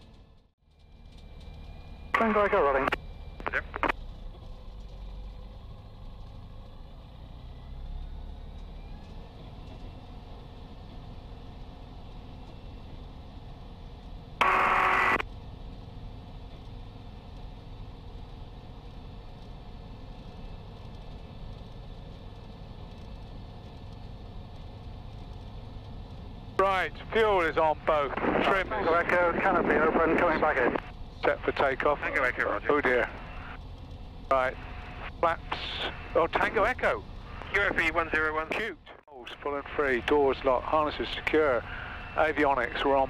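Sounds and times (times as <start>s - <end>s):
radio hiss: 2.2s - 3.9s, 14.4s - 15.2s, 26.6s - 33.6s, 34.3s - 43.0s
aircraft engine idling: 9.0s - 43.0s.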